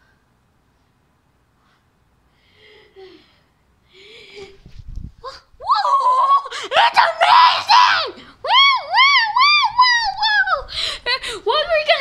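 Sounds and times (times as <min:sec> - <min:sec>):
child shrieking: 0:05.2 - 0:10.3.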